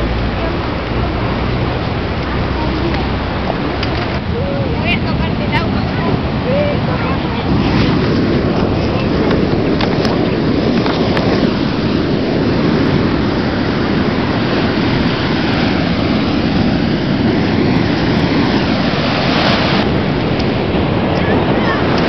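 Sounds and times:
road and engine rumble: 0.0 - 22.0.

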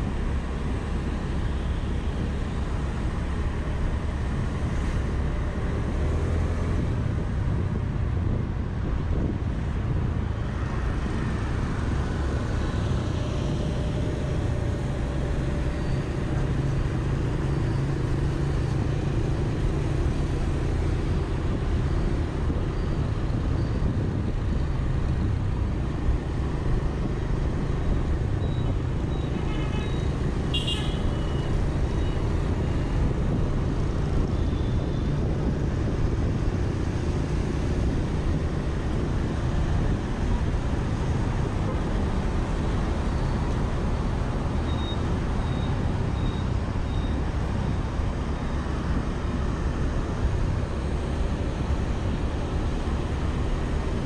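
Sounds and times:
road noise: 0.0 - 54.0
wind on microphone: 21.3 - 26.1, 33.0 - 43.9
vehicle horn beep: 29.2 - 31.5.

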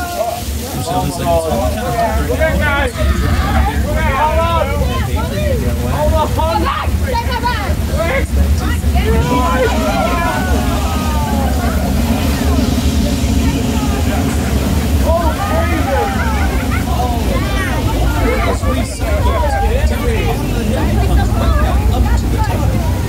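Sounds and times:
passengers calling out excitedly: 0.0 - 23.0
water rushing and splashing: 0.0 - 23.0
low rumble: 0.4 - 23.0.

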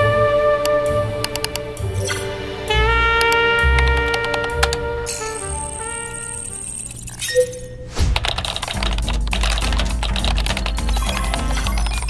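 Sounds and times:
music: 0.0 - 7.0, 8.6 - 12.0
deep bass line: 2.7 - 5.9, 8.0 - 12.0
rapid typing on keyboard: 3.8 - 4.8, 8.2 - 12.0.

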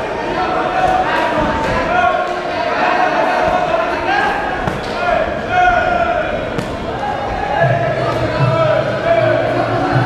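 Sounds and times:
shouting voices echoing in a hall: 0.0 - 10.0.

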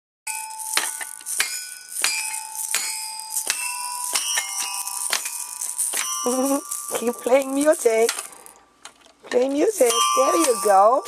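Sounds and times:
toy xylophone notes: 0.3 - 8.6, 9.3 - 11.0.

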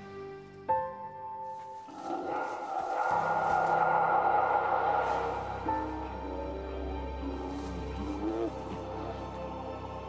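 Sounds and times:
airy swell: 1.9 - 8.0
low drone: 1.9 - 10.0.

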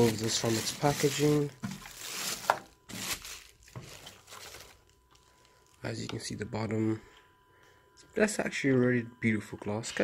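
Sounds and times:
plastic bag crinkling: 0.0 - 6.0.

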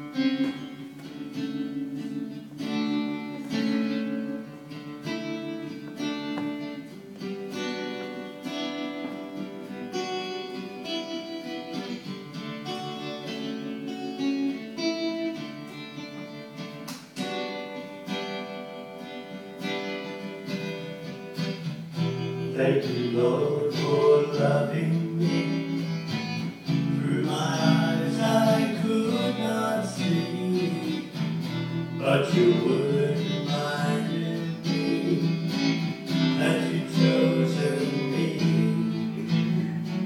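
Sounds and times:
acoustic guitar strumming: 0.0 - 40.0.

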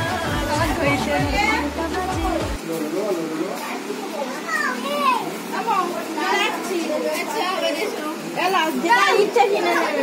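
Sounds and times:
children chattering and calling out: 3.3 - 10.0.

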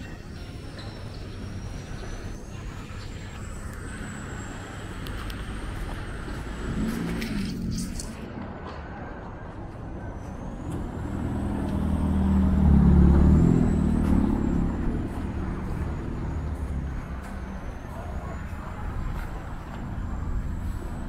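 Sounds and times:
steady traffic noise: 0.0 - 21.0
vehicle engine passing by: 0.4 - 9.3, 9.9 - 21.0.

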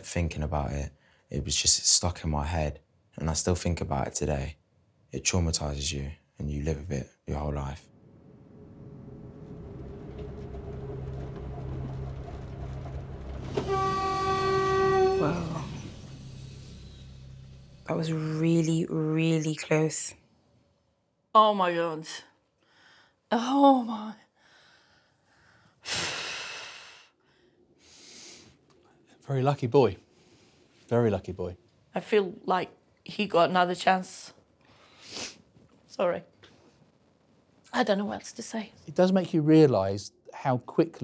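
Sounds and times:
train rumble and hum: 7.6 - 19.1
faint breaths: 22.6 - 23.3, 24.3 - 29.2, 34.6 - 35.6.

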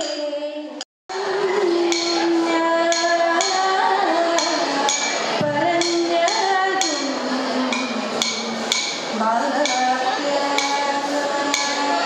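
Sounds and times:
girl singing a long note: 8.6 - 12.0.

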